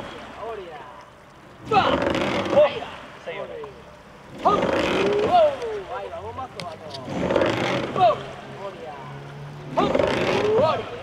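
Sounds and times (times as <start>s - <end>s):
boat hissing through water: 1.4s - 11.0s
man shouting: 8.0s - 8.2s, 9.8s - 11.0s.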